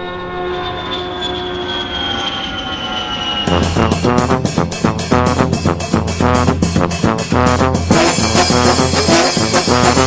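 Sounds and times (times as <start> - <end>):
jet airliner engine noise: 0.0 - 6.1.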